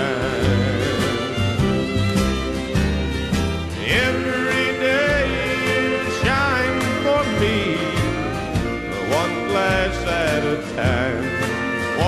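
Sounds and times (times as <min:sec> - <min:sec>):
country band playing: 0:00.0 - 0:12.0
lead instrument gliding notes: 0:00.0 - 0:12.0.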